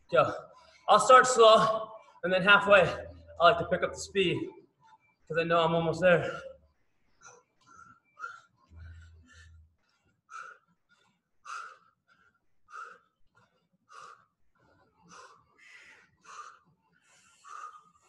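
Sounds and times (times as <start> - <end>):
person breathing hard: 7.1 - 18.0.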